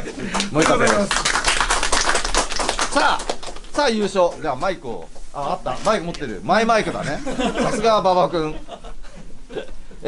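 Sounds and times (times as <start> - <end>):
small group applauding: 0.0 - 4.4.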